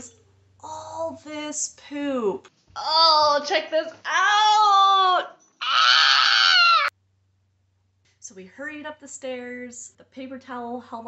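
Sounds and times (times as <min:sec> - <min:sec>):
toddler wailing: 0:05.6 - 0:06.9.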